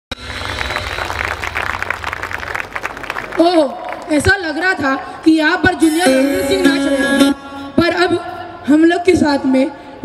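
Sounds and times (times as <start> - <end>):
audience applauding: 0.1 - 4.7.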